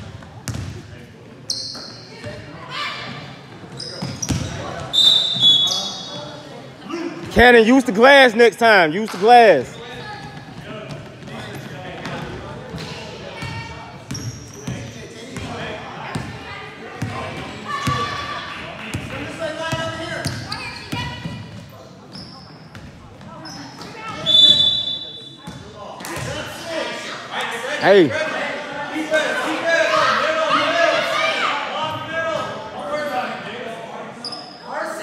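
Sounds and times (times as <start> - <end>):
voices echoing in gym: 0.0 - 35.0.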